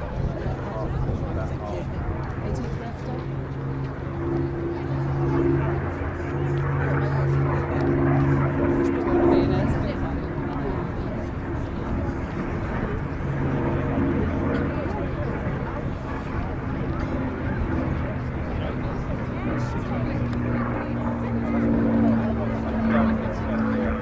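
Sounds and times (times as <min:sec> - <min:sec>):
aircraft engine droning: 0:00.0 - 0:24.0.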